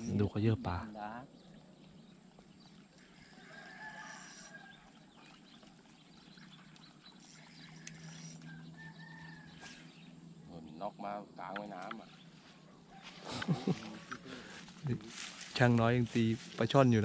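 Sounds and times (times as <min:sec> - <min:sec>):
faint distant bird calls: 0:00.0 - 0:17.0.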